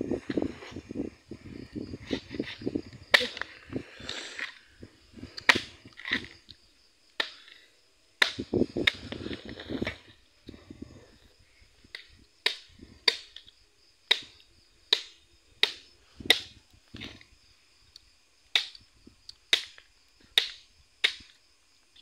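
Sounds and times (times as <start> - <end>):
machete chopping coconut husk: 8.2 - 9.0.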